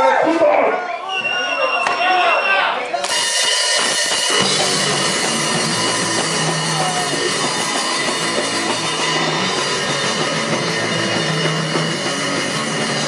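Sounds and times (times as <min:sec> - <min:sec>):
punk rock band playing: 0:03.0 - 0:13.0.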